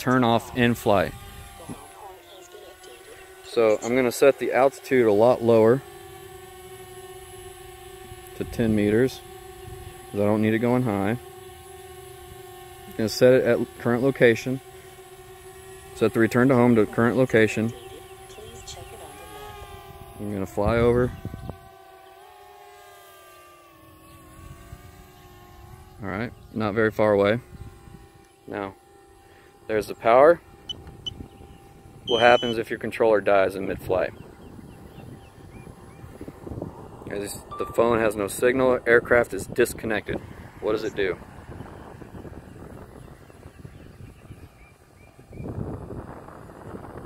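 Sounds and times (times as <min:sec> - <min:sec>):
drone propellers whining: 0:00.0 - 0:47.0.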